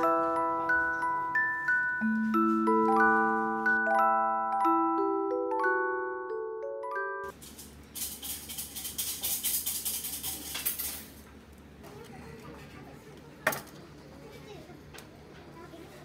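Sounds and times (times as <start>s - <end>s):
glockenspiel jingle: 0.0s - 7.3s
bamboo sticks rattling in cup: 7.3s - 11.1s.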